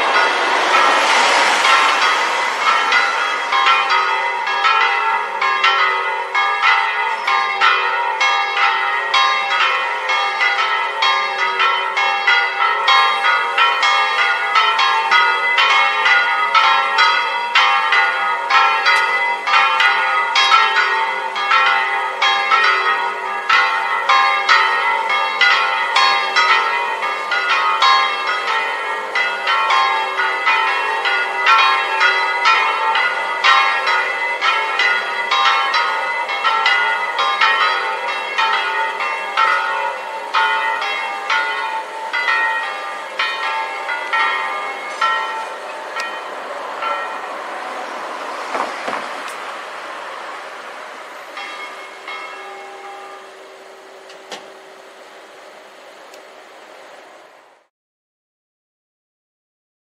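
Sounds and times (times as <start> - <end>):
church bells ringing: 0.0 - 56.0.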